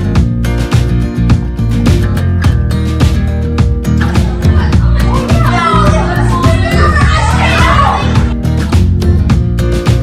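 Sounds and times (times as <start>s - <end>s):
background music: 0.0s - 10.0s
children chattering and calling out: 4.0s - 8.4s.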